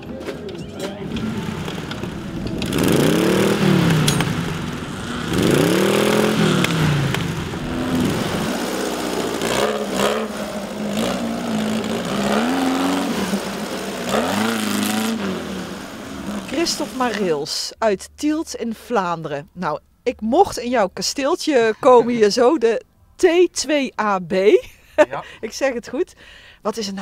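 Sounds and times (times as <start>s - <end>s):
buggy engine revving: 0.7s - 17.5s.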